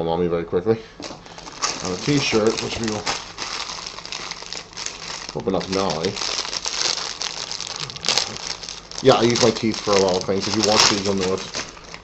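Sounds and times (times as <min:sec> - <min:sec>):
plastic ripping: 0:01.0 - 0:12.0
plastic wrapping crinkling: 0:01.0 - 0:12.0.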